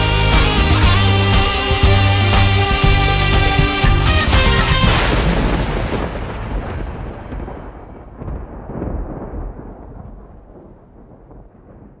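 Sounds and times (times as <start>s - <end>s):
soundtrack music: 0.0s - 7.9s
deep rumbling sound effect: 1.8s - 12.0s.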